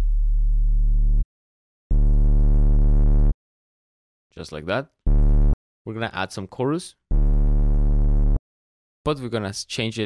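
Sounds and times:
distorted synthesizer bass note: 1.9 - 3.4, 5.1 - 5.6, 7.1 - 8.4.

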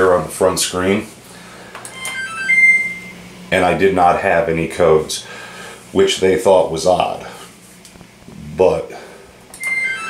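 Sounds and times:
electronic power-on beeps: 1.9 - 3.3, 9.6 - 10.0.

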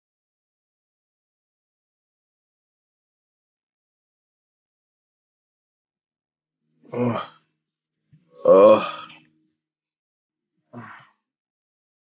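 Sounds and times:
man burping: 6.9 - 7.4, 8.4 - 9.2.

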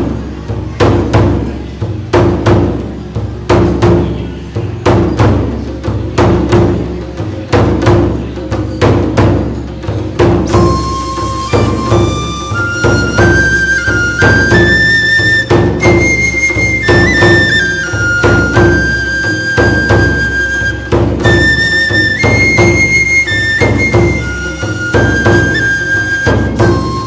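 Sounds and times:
taiko drum strikes: 0.0 - 27.0
bamboo flute melody: 3.8 - 27.0.

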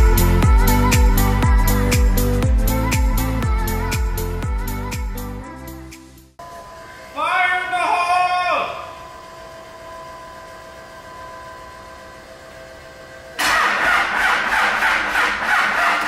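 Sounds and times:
diesel engine starting and running: 13.4 - 16.0.

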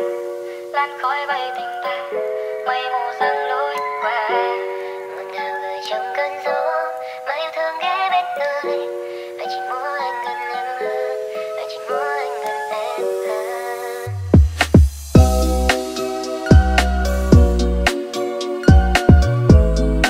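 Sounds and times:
high pitched vocal melody: 0.0 - 14.4
held synth chords: 15.1 - 20.0.

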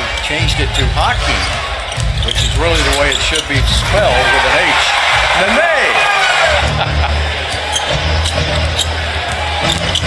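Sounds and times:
arena music with deep bass line: 0.0 - 10.0
noisy basketball crowd: 0.0 - 10.0.

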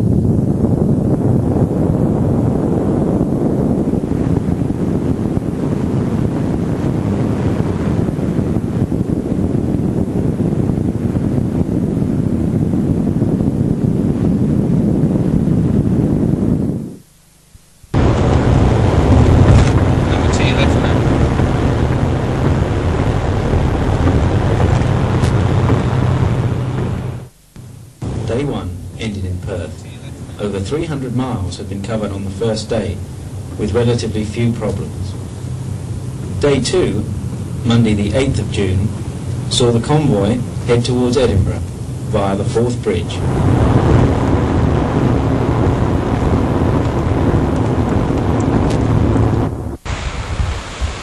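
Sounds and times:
car wind and road noise: 0.0 - 51.0
steady low hum: 0.0 - 51.0.

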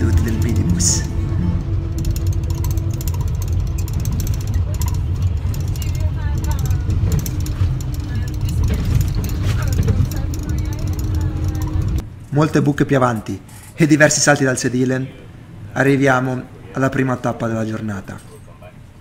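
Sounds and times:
engine and tyre rumble: 0.0 - 12.3.

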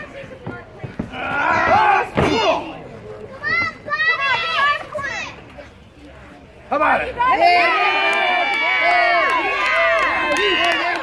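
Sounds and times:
thud: 0.4 - 2.6
children yelling and shrieking: 1.1 - 5.5.

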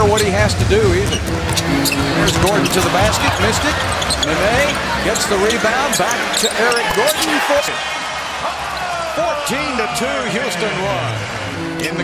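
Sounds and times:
arena crowd noise and voices: 0.0 - 12.0.

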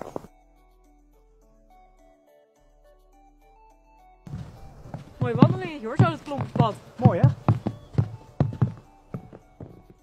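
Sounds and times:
footsteps on snow: 0.0 - 0.3, 4.3 - 10.0
quiet background music: 0.0 - 10.0.

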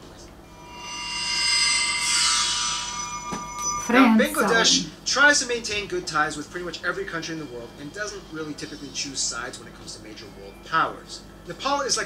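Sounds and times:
high ringing tones: 0.4 - 5.0.

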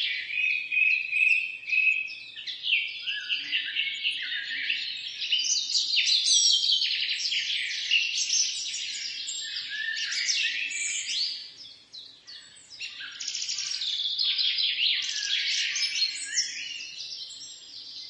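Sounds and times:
small birds chirping chorus: 0.0 - 18.0.

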